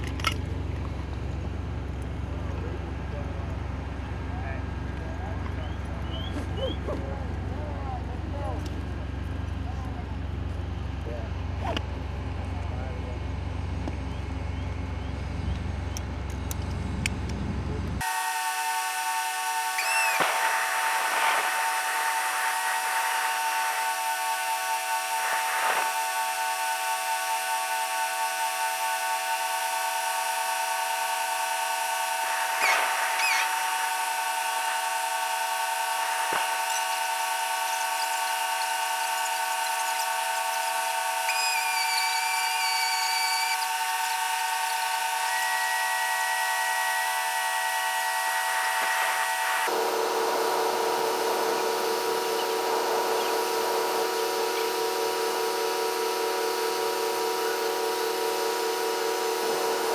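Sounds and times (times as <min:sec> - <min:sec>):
steady whine of held tones: 0:00.0 - 0:59.9
short wavering whistles: 0:05.6 - 0:06.8, 0:19.7 - 0:24.2, 0:32.2 - 0:34.2, 0:41.2 - 0:46.3.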